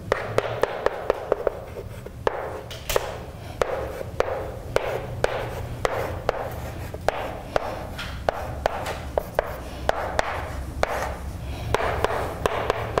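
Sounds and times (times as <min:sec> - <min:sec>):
chalk tapping on blackboard: 0:00.1 - 0:13.0
chalk scratching: 0:00.4 - 0:13.0.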